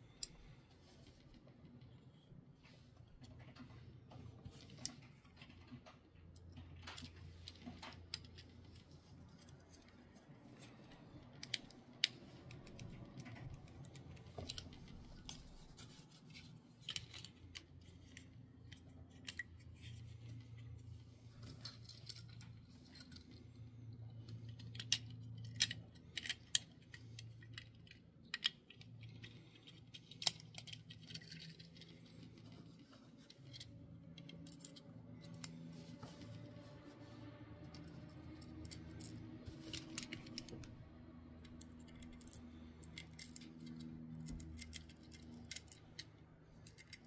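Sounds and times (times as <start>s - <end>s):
faint low hum: 0.0s - 47.0s
plastic and metal parts clicking: 4.4s - 20.6s, 24.2s - 36.4s, 37.6s - 47.0s.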